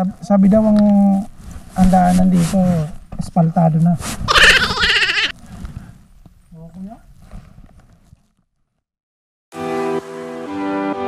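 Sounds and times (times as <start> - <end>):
man laughing: 4.3 - 5.3.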